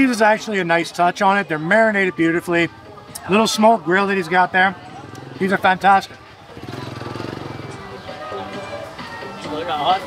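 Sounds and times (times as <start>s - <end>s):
small motorbike engine running: 6.5s - 7.9s.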